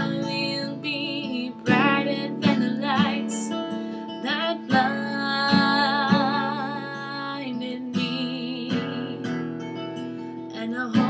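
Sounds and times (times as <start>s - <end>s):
acoustic guitar strummed: 0.0s - 11.0s.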